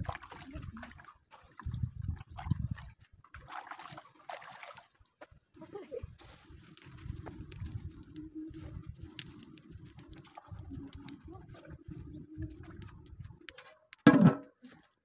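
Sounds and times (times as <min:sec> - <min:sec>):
wood fire crackling and popping: 0:06.3 - 0:14.1.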